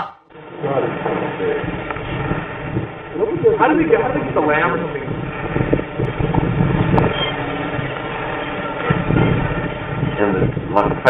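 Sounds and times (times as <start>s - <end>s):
dull steady background noise: 0.0s - 11.0s
muffled voices talking: 3.0s - 5.3s, 7.3s - 11.0s.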